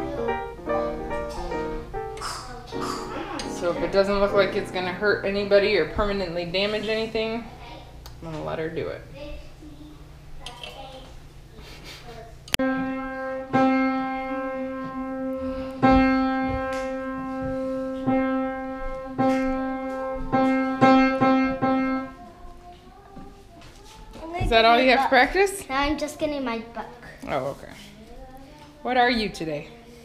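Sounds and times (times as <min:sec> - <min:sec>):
piano single notes: 0:00.0 - 0:05.3, 0:12.6 - 0:22.2.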